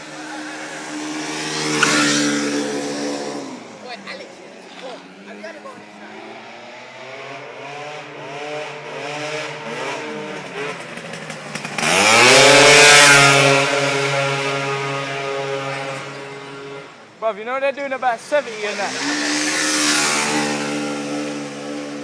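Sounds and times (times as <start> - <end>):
scooter engine passing by: 0.0 - 17.0, 18.4 - 22.0.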